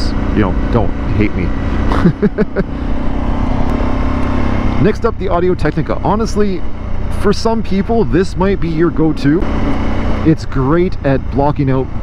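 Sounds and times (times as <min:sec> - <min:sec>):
motorcycle engine running: 0:00.0 - 0:12.0
wind and road noise: 0:00.0 - 0:12.0.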